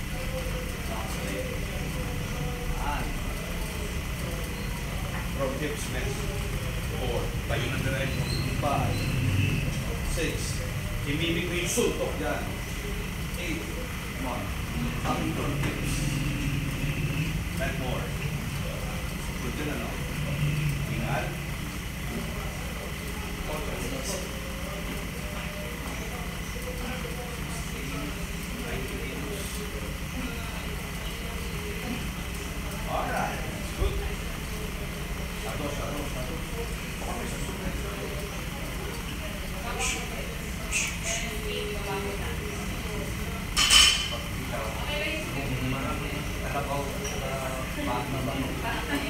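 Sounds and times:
indistinct background voices: 0.0s - 49.0s
steady low hum: 0.0s - 49.0s.

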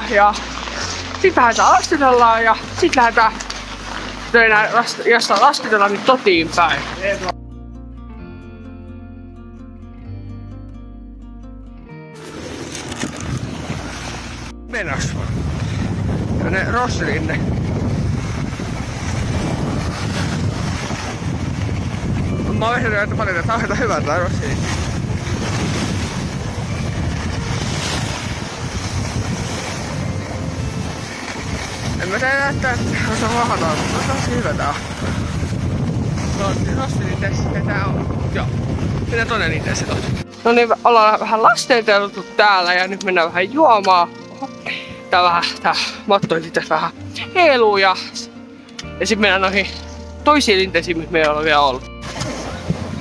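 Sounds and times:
music with plucked notes: 0.0s - 53.0s
wind noise on microphone: 12.3s - 40.4s, 52.0s - 53.0s.

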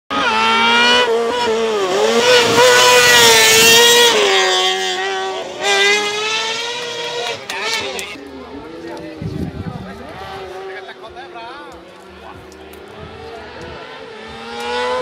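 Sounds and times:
racing car engine revving: 0.1s - 15.0s.

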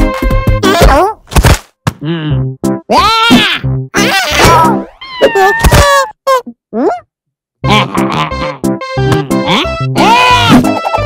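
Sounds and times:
cartoon character wavering cry: 2.9s - 6.2s, 10.0s - 11.0s
cartoon character yelps: 2.9s - 6.2s, 10.0s - 10.8s.

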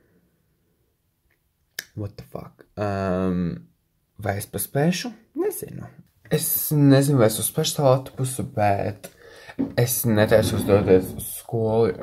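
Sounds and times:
person speaking: 4.2s - 12.0s.

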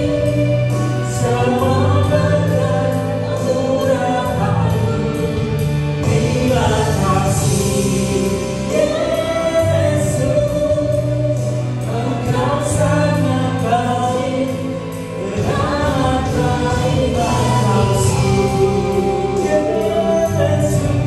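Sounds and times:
man and woman singing a duet: 0.0s - 21.0s.

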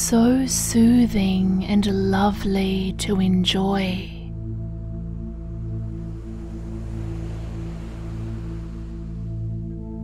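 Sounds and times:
ambient drone music: 0.1s - 10.0s
ocean waves washing: 4.7s - 10.0s.

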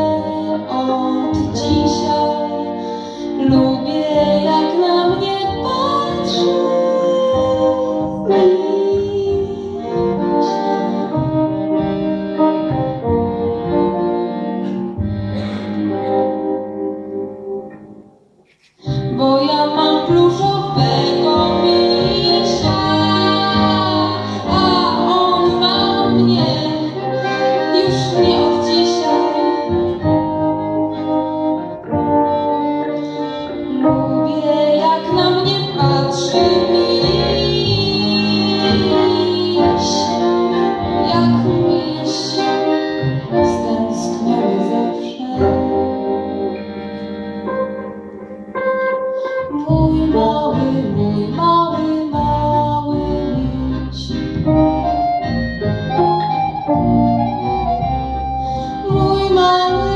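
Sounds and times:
accordion chords: 0.0s - 59.9s
double bass: 0.0s - 59.9s.

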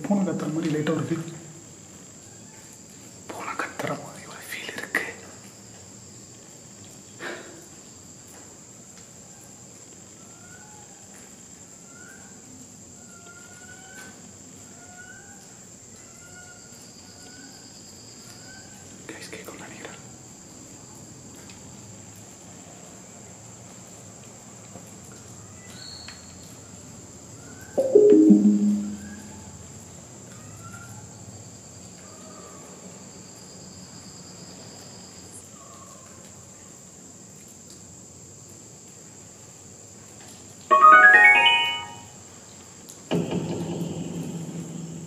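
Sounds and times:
phone speaker hiss with chirps: 3.2s - 5.5s, 19.0s - 20.1s
voice-like burst falling in pitch: 27.8s - 29.3s.

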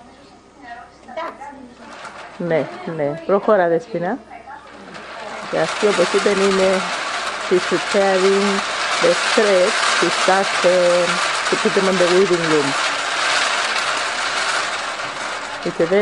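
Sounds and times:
people talking: 0.0s - 12.8s, 15.5s - 16.0s
steady rushing noise: 4.9s - 16.0s.

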